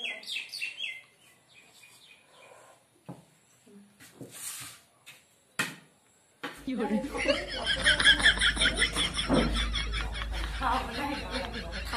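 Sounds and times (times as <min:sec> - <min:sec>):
bird chirping: 0:00.0 - 0:02.8.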